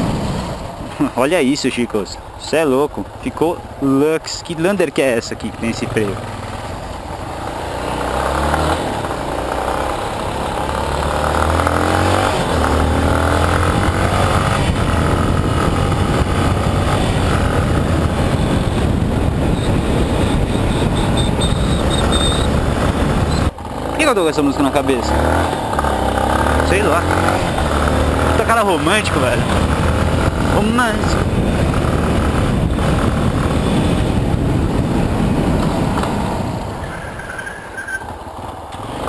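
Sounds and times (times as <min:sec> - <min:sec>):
road noise: 0:00.0 - 0:39.0
motorcycle engine running: 0:05.5 - 0:36.8
wind noise: 0:11.4 - 0:23.8, 0:24.7 - 0:38.3.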